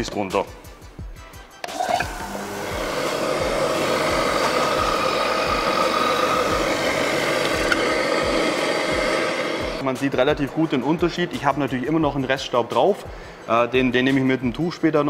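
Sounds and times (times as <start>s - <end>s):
electric orbital sander running: 1.7s - 9.8s.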